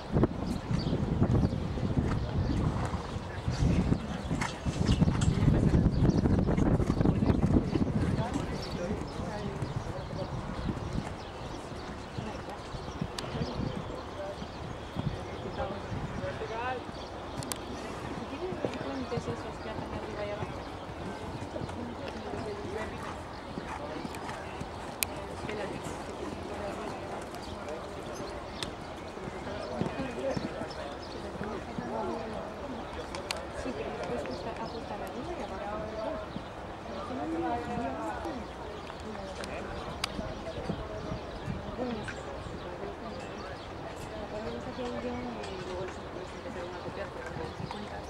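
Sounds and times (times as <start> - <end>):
indistinct background voices: 0.0 - 48.0
horse hooves cantering on sand: 2.0 - 43.2.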